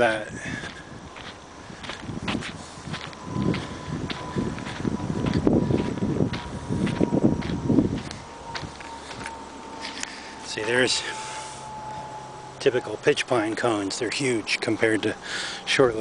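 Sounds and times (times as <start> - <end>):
footsteps on sandy dirt road: 0.0 - 16.0.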